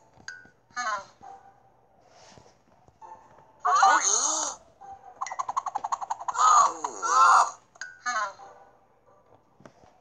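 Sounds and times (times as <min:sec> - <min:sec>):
cartoon man crying out: 0:06.4 - 0:07.6.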